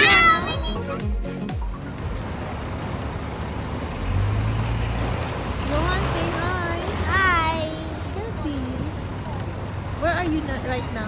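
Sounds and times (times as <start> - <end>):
child's voice: 0.0 - 0.8, 6.9 - 8.2
vehicle running noise: 0.0 - 11.0.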